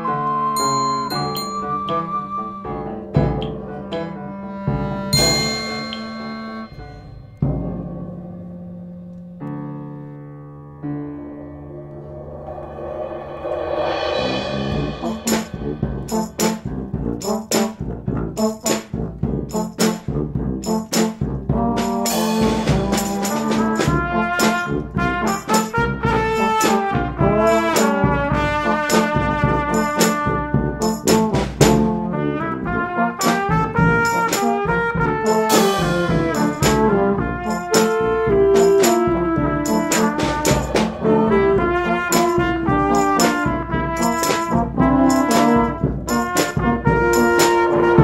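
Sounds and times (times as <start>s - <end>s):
trumpet: 0.0s - 7.6s, 12.1s - 48.0s
trombone: 0.0s - 8.1s, 13.1s - 48.0s
sharp percussion strikes: 0.6s - 3.6s, 5.2s - 8.5s, 11.6s - 32.1s, 33.2s - 48.0s
drum and cymbal hits: 4.7s - 8.2s, 12.0s - 32.2s, 33.2s - 48.0s
low bass line: 11.0s - 17.3s, 39.2s - 42.8s.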